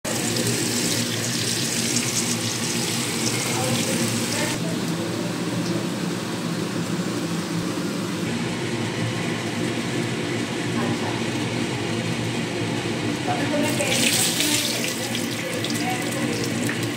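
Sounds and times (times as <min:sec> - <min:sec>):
potato wedges sizzling in oil: 0:00.1 - 0:04.6.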